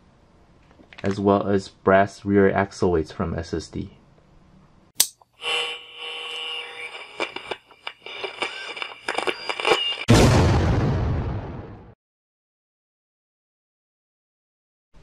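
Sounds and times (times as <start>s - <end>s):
ringing tones: 5.1s - 10.1s
loud boom: 10.1s - 12.0s.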